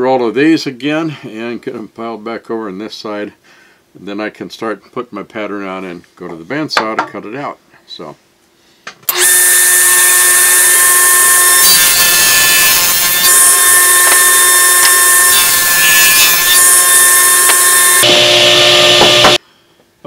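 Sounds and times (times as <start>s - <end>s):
table saw cutting wood: 9.1s - 19.4s.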